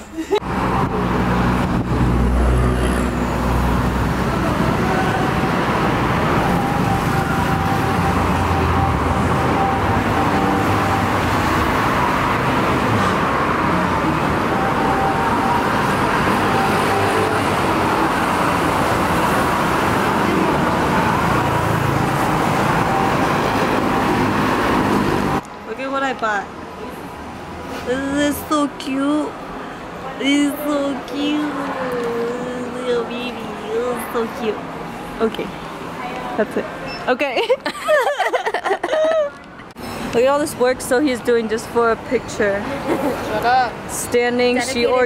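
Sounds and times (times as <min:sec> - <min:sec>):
road traffic rumble: 0:00.0 - 0:45.0.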